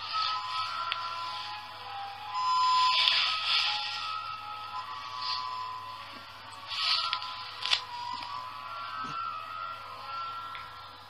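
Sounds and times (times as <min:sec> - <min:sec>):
ice cream van chime melody: 0:00.0 - 0:06.6, 0:07.2 - 0:11.0
steady hiss: 0:00.0 - 0:11.0.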